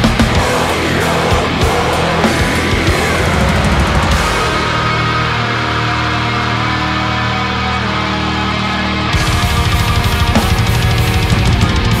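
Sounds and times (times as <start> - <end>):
distorted electric guitars chord: 0.0 - 12.0.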